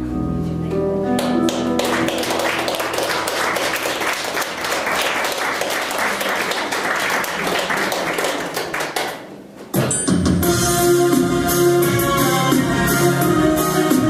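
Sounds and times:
audience applauding: 1.2 - 9.4
song accompaniment: 9.8 - 14.0.

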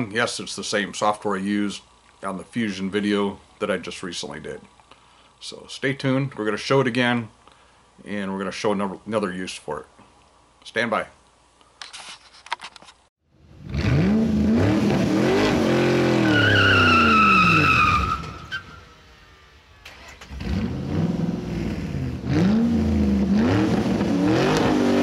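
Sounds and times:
car engine revving: 13.4 - 25.0
high tire squeal: 15.2 - 19.4.

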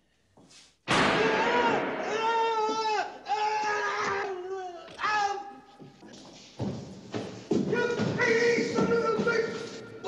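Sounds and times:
person screaming: 1.2 - 5.5.

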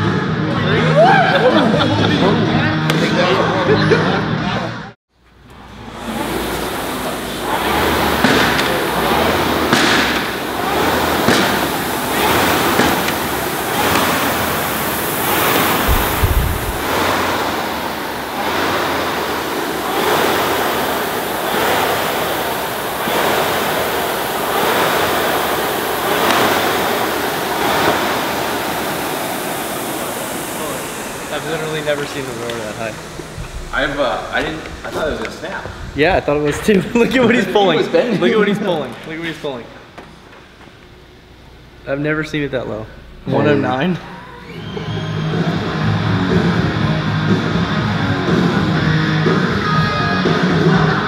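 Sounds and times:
rowing machine flywheel whooshing: 5.6 - 38.1.

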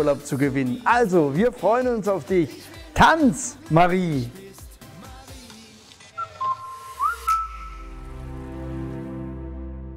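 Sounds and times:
whistled tune: 6.1 - 8.4
music chord with bass: 6.4 - 9.9.

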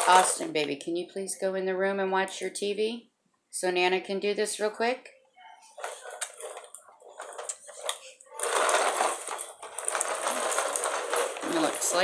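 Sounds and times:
objects rustling and clattering: 0.0 - 0.8, 5.6 - 12.0.

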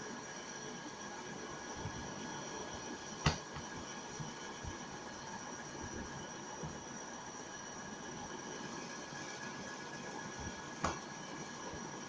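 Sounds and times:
faint high electronic whine: 0.0 - 12.0.

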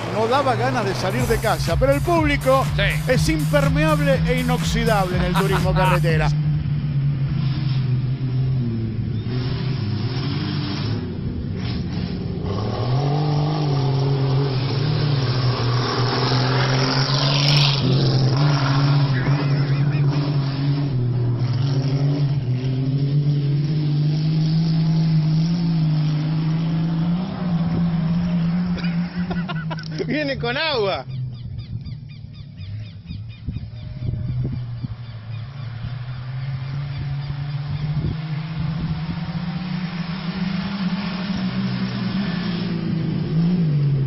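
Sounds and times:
race car passing by: 0.0 - 30.2, 33.7 - 44.0
race car engines revving: 0.0 - 44.0.

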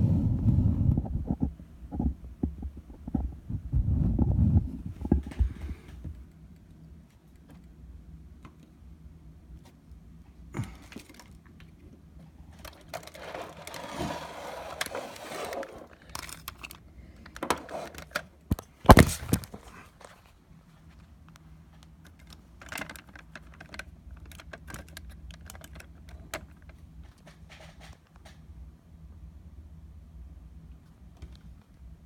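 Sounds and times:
faint low hum: 0.0 - 32.0
clicks and knocks of handling: 21.2 - 28.4.

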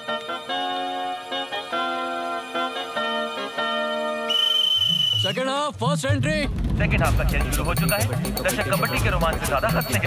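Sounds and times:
soft keyboard music: 0.0 - 4.3, 7.0 - 10.0
referee's whistle long blast: 4.3 - 5.4.

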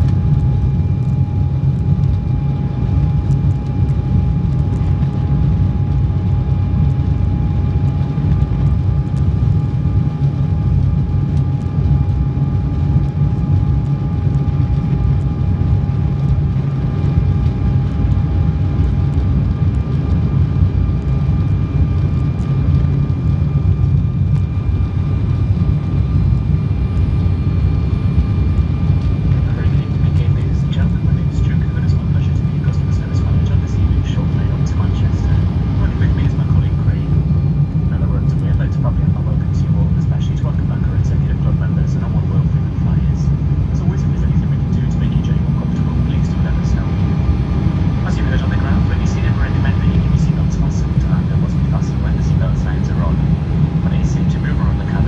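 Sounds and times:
airliner cabin drone: 0.0 - 55.0
faint steady whine tones: 0.0 - 55.0.

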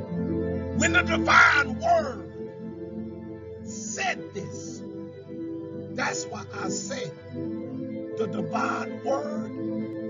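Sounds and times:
slow ambient music: 0.0 - 10.0.

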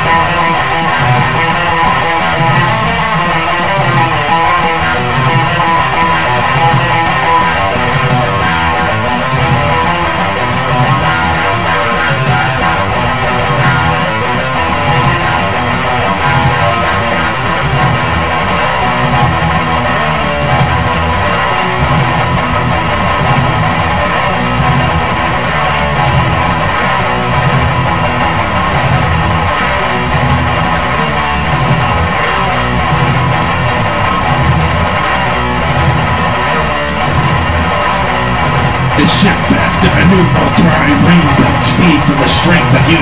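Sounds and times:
heavy metal electric guitar: 0.0 - 43.0.

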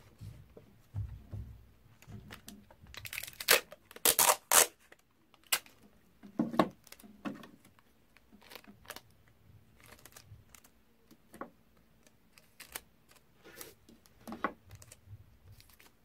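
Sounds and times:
tape ripping off a roll: 3.0 - 5.8.

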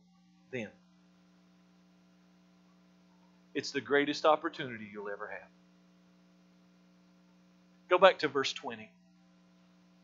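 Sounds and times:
electrical mains hum: 0.0 - 10.0
man speaking: 0.6 - 0.8, 3.6 - 5.5, 7.9 - 9.0.

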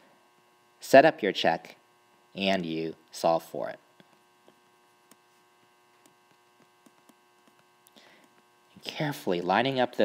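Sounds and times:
faint electrical hum: 0.0 - 10.0
faint irregular ticks: 3.9 - 8.8.

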